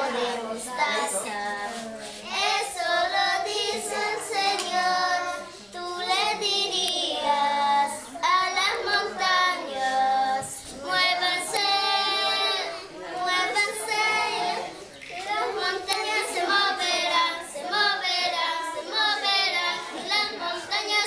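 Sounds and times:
children singing: 0:00.0 - 0:21.0.

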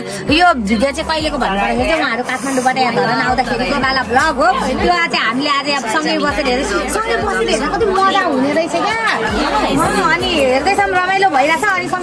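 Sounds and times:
women chattering: 0:00.0 - 0:12.0.

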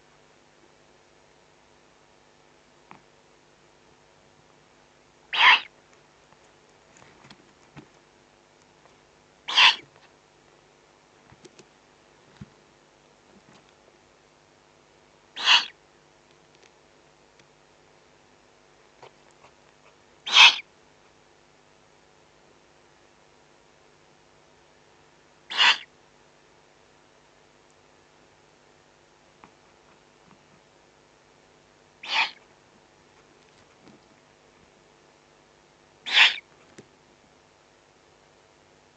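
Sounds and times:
owl raspy hissing call: 0:05.3 - 0:05.7, 0:09.5 - 0:09.9, 0:15.4 - 0:15.8, 0:20.2 - 0:20.7, 0:25.5 - 0:25.9, 0:32.0 - 0:32.5, 0:36.0 - 0:36.5.

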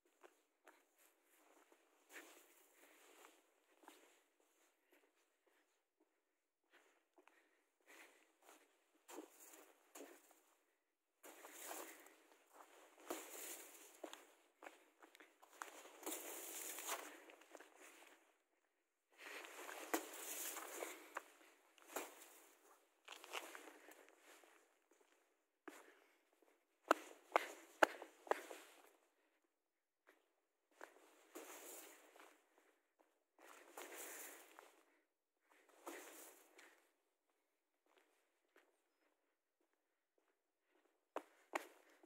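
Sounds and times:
footsteps crunching through snow: 0:11.2 - 0:14.2, 0:15.4 - 0:18.0, 0:19.3 - 0:21.2, 0:33.6 - 0:34.6.

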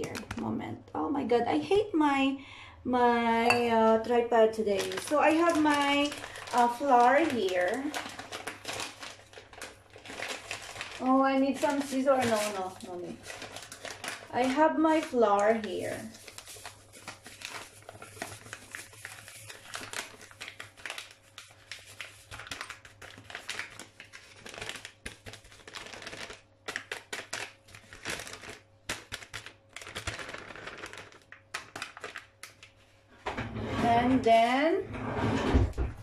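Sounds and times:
paper bag crinkling: 0:04.6 - 0:32.8.

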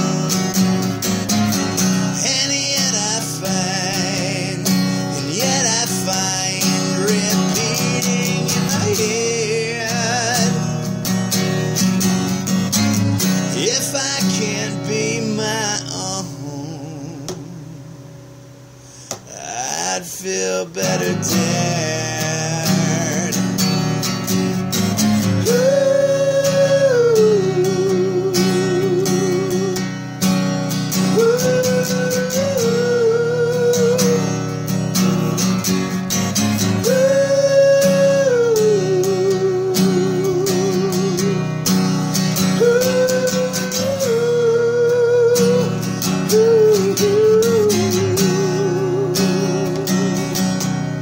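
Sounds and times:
acoustic guitar chords: 0:00.0 - 0:51.0
slow melody with vibrato: 0:00.0 - 0:51.0.

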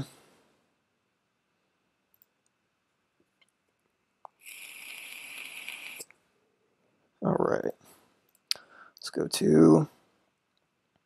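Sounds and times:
brief even hiss: 0:04.4 - 0:06.1.

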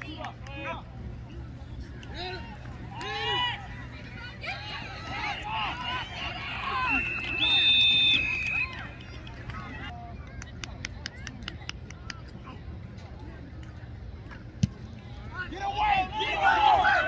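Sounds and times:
people shouting: 0:02.1 - 0:07.0, 0:15.4 - 0:17.0
referee whistles: 0:06.6 - 0:08.9.

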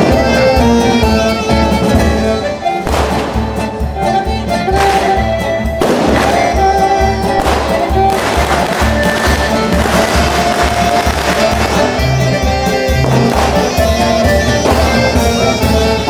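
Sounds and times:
accordion: 0:00.0 - 0:16.0
acoustic guitar: 0:00.0 - 0:16.0
drum kit: 0:00.0 - 0:16.0
fiddle: 0:00.0 - 0:16.0
trumpet: 0:00.0 - 0:16.0.

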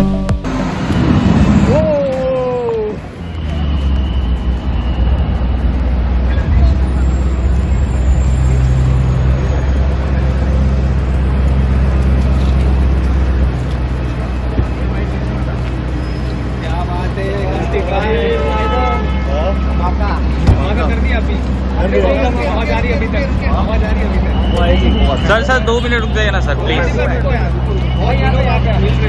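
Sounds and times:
suv engine idling: 0:00.0 - 0:29.0.

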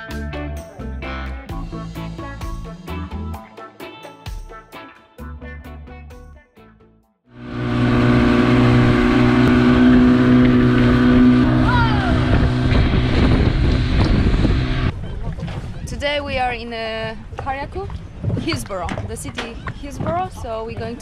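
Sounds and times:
outboard motor running: 0:07.4 - 0:14.9
wind on microphone: 0:07.4 - 0:21.0.

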